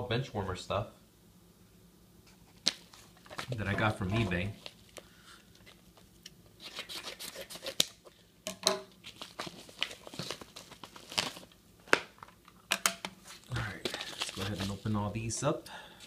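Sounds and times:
paper crinkling and tearing: 0:02.5 - 0:08.1, 0:09.0 - 0:12.0, 0:13.2 - 0:15.2.

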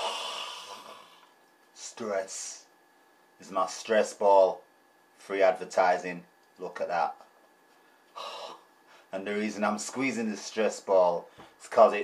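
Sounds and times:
man sighing heavily: 0:00.0 - 0:01.3, 0:08.1 - 0:08.7.

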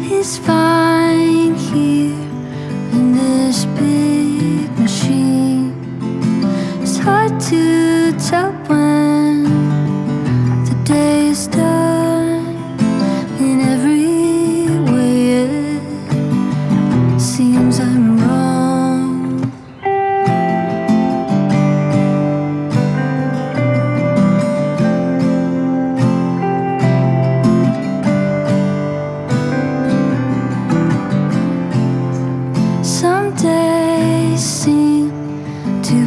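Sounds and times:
acoustic guitar strumming: 0:00.0 - 0:36.0
electric guitar held notes: 0:00.0 - 0:36.0.

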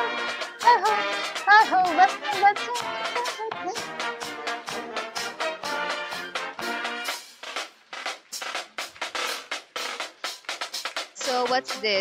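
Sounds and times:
brass chords: 0:00.0 - 0:08.6
snare and bass drum cadence: 0:04.0 - 0:12.0.

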